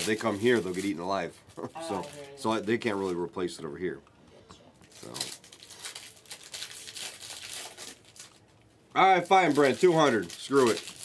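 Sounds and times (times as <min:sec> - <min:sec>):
plastic packaging crinkling: 0:00.0 - 0:03.3, 0:04.8 - 0:11.0.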